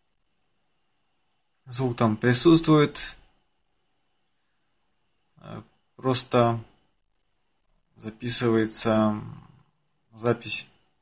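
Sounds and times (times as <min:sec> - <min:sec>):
faint high whine: 0:00.0 - 0:11.0
man speaking: 0:01.7 - 0:03.3, 0:05.4 - 0:06.8, 0:08.0 - 0:10.8.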